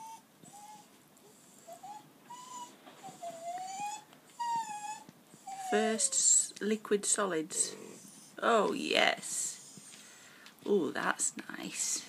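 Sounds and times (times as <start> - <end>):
puppy whining: 0.0 - 6.5, 7.5 - 8.5.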